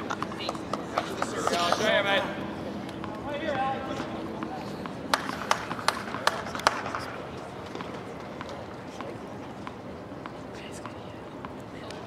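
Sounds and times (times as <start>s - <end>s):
tennis ball bouncing on hard court: 4.0s - 7.0s, 7.6s - 12.0s.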